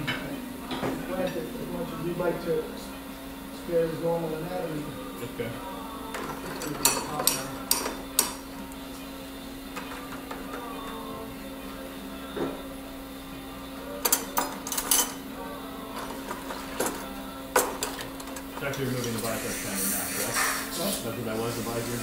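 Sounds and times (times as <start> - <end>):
low murmured voices: 0.0 - 22.0
steady electrical hum: 0.0 - 22.0.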